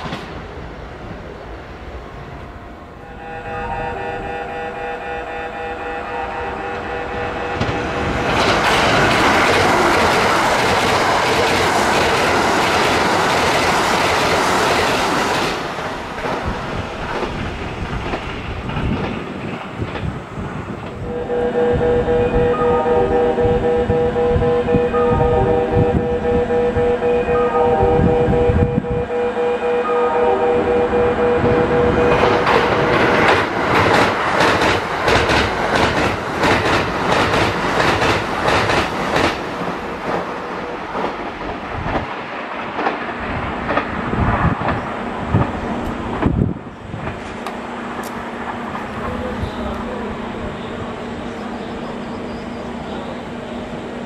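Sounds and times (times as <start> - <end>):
long multi-note tone: 2.0 - 8.1, 21.0 - 32.4
train wheels clattering over joints: 7.6 - 21.0, 31.8 - 49.6.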